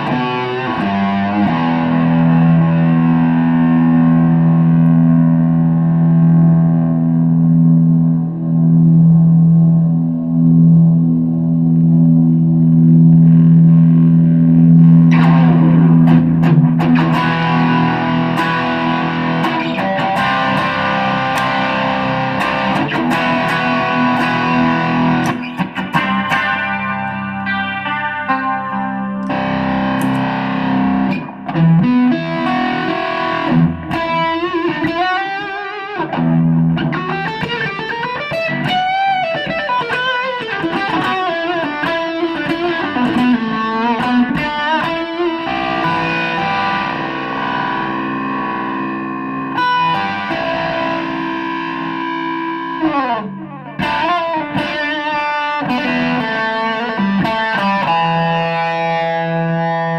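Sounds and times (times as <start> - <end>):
overdriven electric guitar: 0.0 - 59.9.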